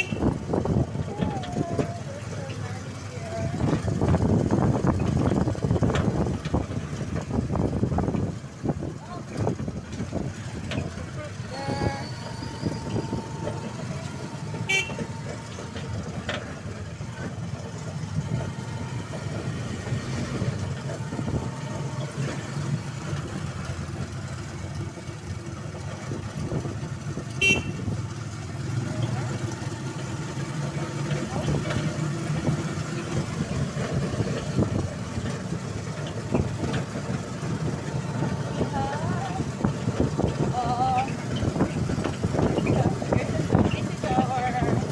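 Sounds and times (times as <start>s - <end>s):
vehicle horn: 0.0s - 0.4s, 11.9s - 15.6s, 27.3s - 28.0s
motor tricycle engine: 0.0s - 44.9s
road noise: 0.0s - 44.9s.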